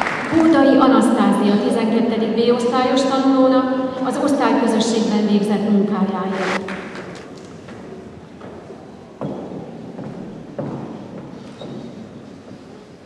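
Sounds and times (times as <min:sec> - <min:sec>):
low room noise: 0:00.0 - 0:13.0
footsteps on a hard floor: 0:06.5 - 0:12.8.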